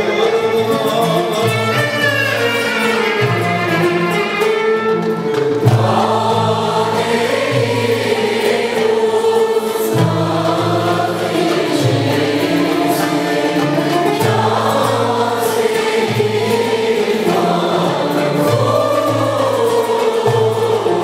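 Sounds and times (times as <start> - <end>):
man singing with choir: 0.0 - 2.8, 5.7 - 21.0
frame drums: 0.0 - 21.0
plucked strings and flute ensemble: 0.0 - 21.0.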